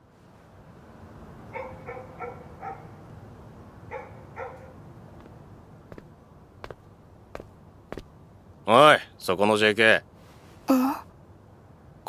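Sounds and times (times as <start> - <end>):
low background noise: 0.0 - 12.0
dog barking: 1.5 - 3.0, 3.9 - 4.8.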